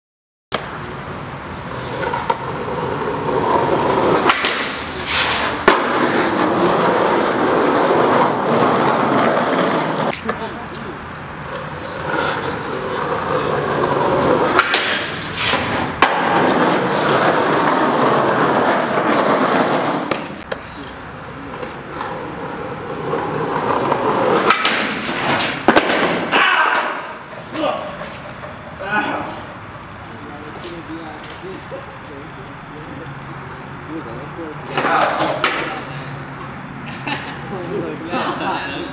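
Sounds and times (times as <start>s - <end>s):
skateboard wheels on rough asphalt: 0.6s - 31.8s, 32.9s - 35.9s
skateboard clacks: 1.6s - 10.8s, 11.4s - 28.8s, 34.6s - 35.9s.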